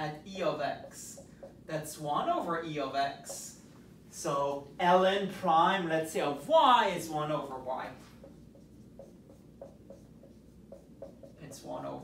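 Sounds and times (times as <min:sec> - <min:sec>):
marker writing on whiteboard: 0:00.0 - 0:03.6, 0:07.0 - 0:12.0.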